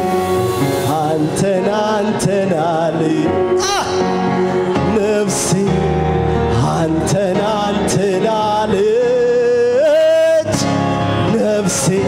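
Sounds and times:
church worship singing: 0.0s - 12.0s.

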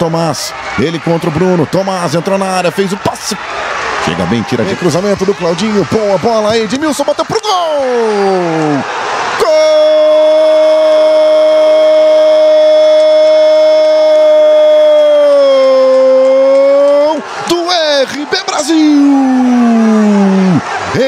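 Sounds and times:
excited shouted commentary: 0.0s - 21.0s.

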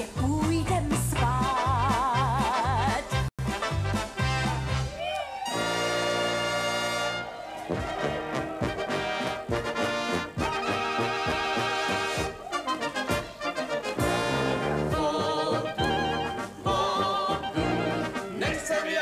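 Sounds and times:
brass band playing: 1.2s - 19.0s.

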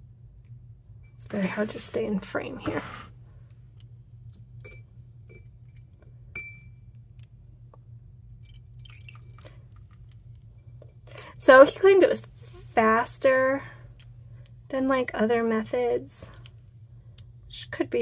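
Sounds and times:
steady low hum: 0.0s - 18.0s
glass clinks: 6.3s - 6.7s.

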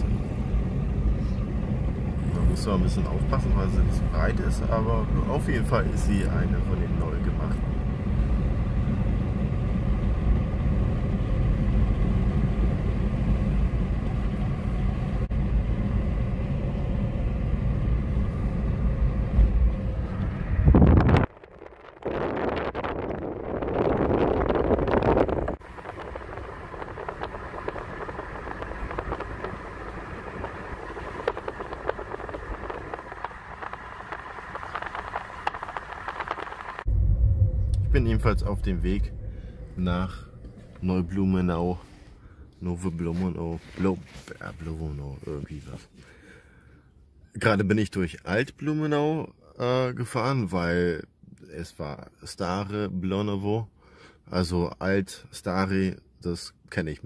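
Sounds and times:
car cabin road and engine noise: 0.0s - 57.0s
thin hum: 7.6s - 42.6s.

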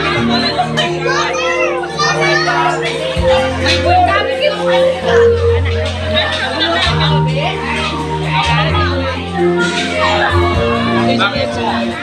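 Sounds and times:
children calling out: 0.0s - 5.4s
background music with held notes: 0.0s - 12.0s
people talking: 0.0s - 12.0s.

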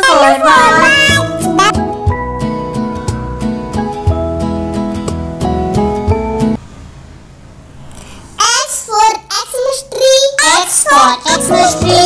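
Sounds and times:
child singing: 0.0s - 1.7s, 8.4s - 12.0s.

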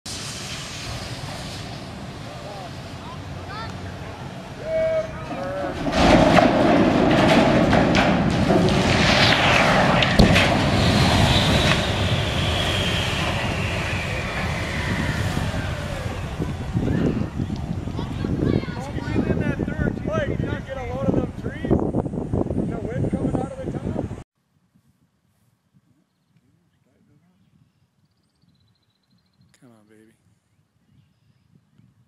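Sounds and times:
metal screeching: 4.6s - 16.5s
steel crumpling and straining: 5.0s - 13.8s
sharp crack: 5.2s - 17.7s
rumble of falling tank: 5.2s - 18.4s.

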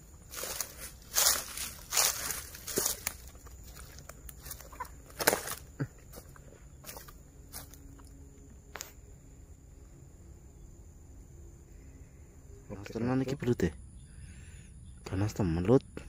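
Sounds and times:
footsteps crunching through dry fronds: 0.0s - 9.0s.

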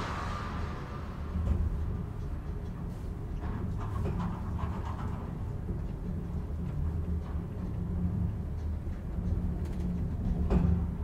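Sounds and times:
elevator running low rumble: 0.0s - 11.0s.

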